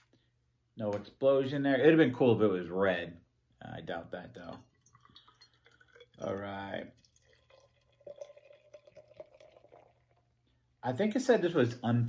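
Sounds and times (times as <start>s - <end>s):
beer glugging into a glass: 4.4s - 10.4s.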